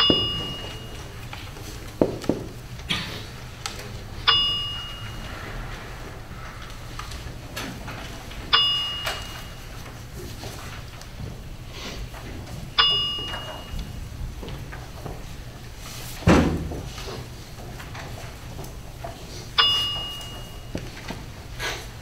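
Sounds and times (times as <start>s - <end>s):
metallic dings: 0.0s - 1.2s, 4.2s - 5.7s, 8.4s - 9.9s, 12.8s - 14.1s, 19.6s - 21.0s
soft knocks and rustles: 0.0s - 3.1s
low room hum: 0.0s - 22.0s.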